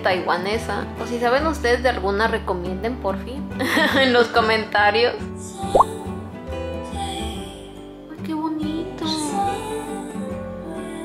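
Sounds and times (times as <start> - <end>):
background music: 0.0 - 11.0
rising plop sound effect: 5.7 - 5.9.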